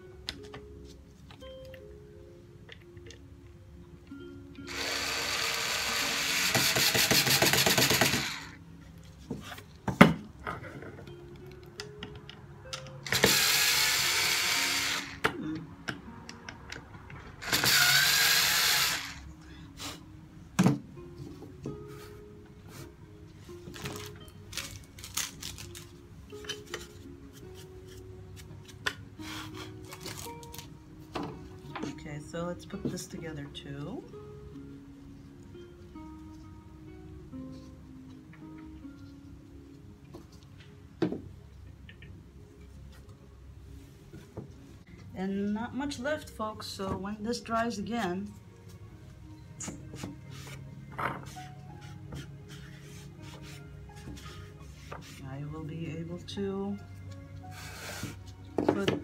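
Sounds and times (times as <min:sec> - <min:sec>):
electric drill running: 0:04.7 - 0:08.6, 0:13.1 - 0:15.2, 0:17.4 - 0:19.2.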